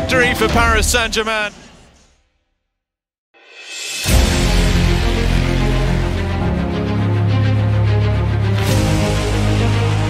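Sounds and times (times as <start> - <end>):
background music: 0.0 - 1.3, 3.4 - 10.0.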